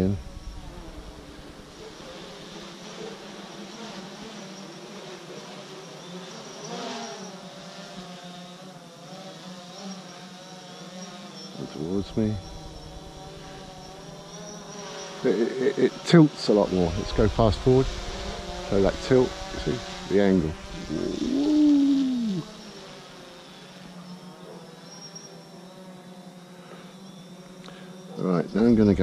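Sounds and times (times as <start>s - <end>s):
drone propeller buzz: 0.0s - 4.6s, 6.2s - 29.0s.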